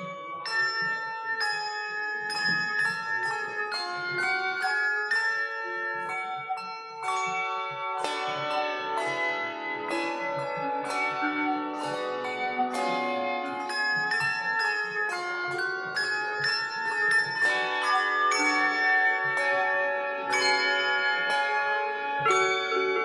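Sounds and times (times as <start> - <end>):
handbell choir ringing: 0.0 - 23.0.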